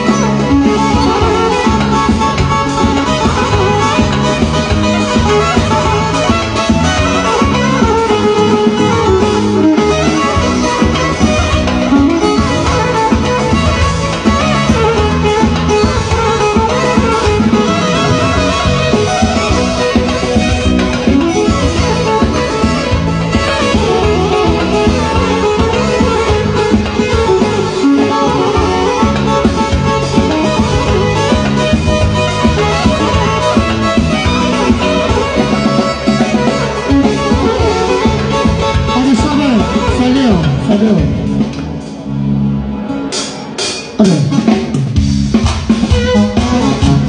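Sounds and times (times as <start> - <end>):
violin melody: 0.0 - 42.4, 45.6 - 47.0
keyboards with rhythm and bass: 0.0 - 47.0.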